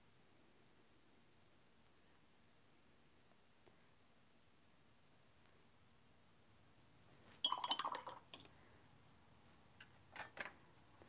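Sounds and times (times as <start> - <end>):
painting tools clinking on glass: 7.3 - 8.5.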